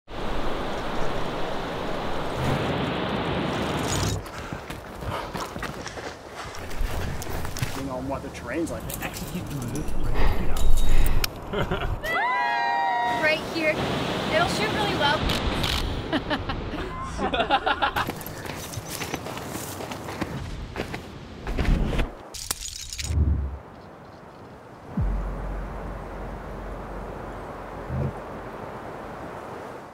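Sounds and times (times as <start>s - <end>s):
footsteps crunching on dirt: 4.2s - 8.0s, 18.0s - 22.3s
waterfall rushing: 13.0s - 15.2s
wind rumbling: 22.9s - 29.9s
low thump: 25.0s - 27.1s.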